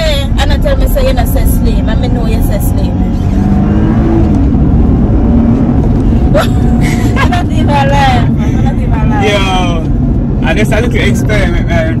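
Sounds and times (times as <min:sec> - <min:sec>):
car cabin rumble: 0:00.0 - 0:12.0.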